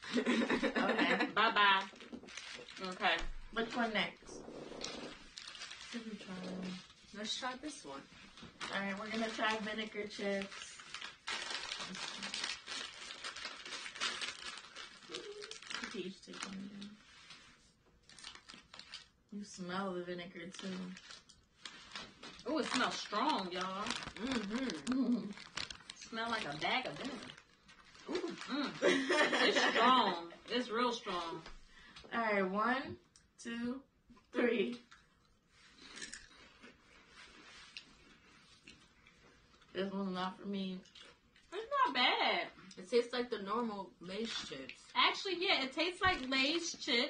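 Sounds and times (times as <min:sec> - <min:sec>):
plastic chip bag crinkling: 0:01.6 - 0:03.9, 0:04.6 - 0:17.4, 0:18.0 - 0:19.6, 0:20.3 - 0:31.4
sharp crackles: 0:20.5 - 0:28.7.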